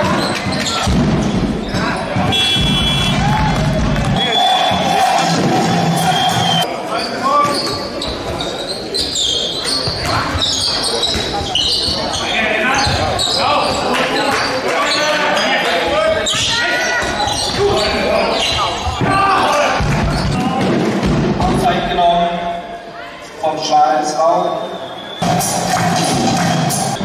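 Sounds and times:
ball bouncing on court floor: 2.1s - 3.4s.

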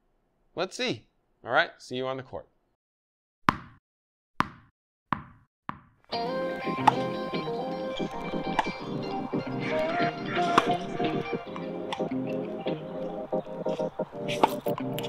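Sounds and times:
instrumental music with steady beat: 6.1s - 15.0s.

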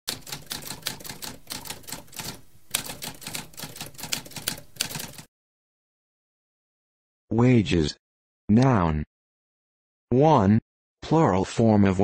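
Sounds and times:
typewriter keys clacking: 0.1s - 5.3s.

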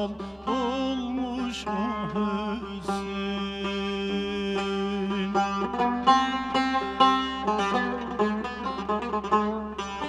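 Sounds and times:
man singing a folk lament: 0.0s - 10.0s
plucked long-necked lute: 0.0s - 10.0s.

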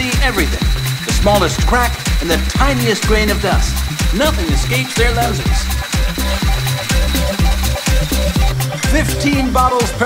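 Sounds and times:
electronic music with kick drums: 0.0s - 10.0s.

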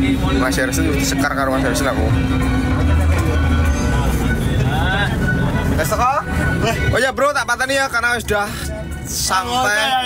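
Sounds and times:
bus engine rumble: 0.0s - 10.0s
road noise: 0.0s - 10.0s.

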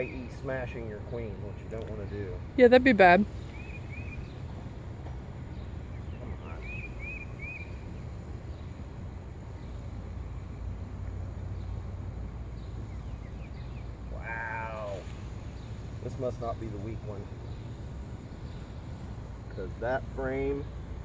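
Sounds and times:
bird chirping: 0.0s - 21.0s
outdoor background noise: 0.0s - 21.0s.

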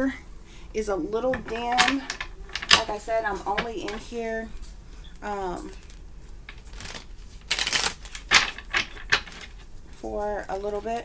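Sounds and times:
cards being shuffled: 1.3s - 4.7s, 5.3s - 9.7s
cards snapping: 5.7s - 9.6s.

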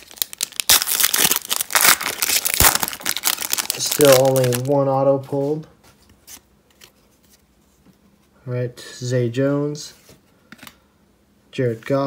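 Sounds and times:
foil wrapper tearing and crinkling: 0.0s - 4.7s.

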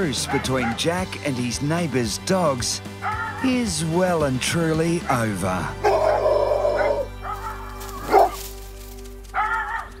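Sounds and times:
background music with chords: 0.0s - 10.0s
dog barking: 3.0s - 3.4s, 5.8s - 8.4s, 9.4s - 9.9s.

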